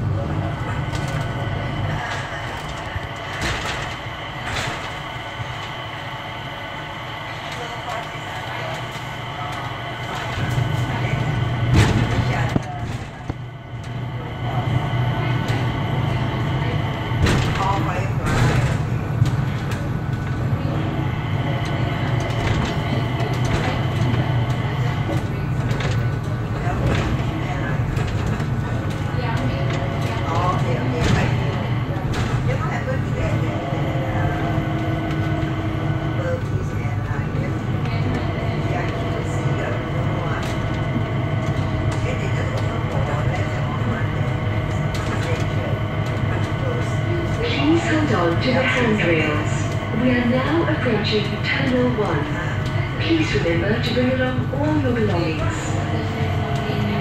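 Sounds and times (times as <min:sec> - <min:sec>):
train cabin hum with high whine: 0:00.0 - 0:57.0.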